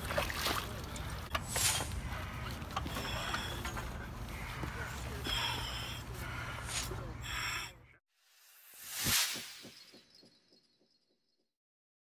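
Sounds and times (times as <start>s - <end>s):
whoosh sound effect: 8.4s - 10.3s.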